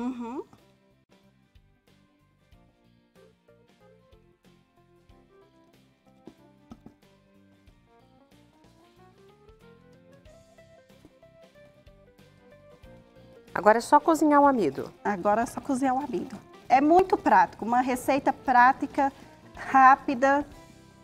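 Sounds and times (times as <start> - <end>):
faint background music: 0.0 - 21.0.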